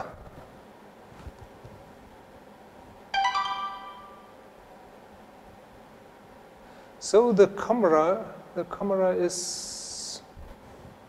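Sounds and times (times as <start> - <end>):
two-note notification chime: 3.2 - 4.3.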